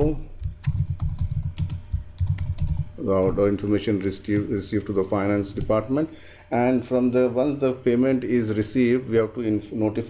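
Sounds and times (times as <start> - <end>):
computer keyboard typing: 0.4 - 3.3, 4.3 - 5.8.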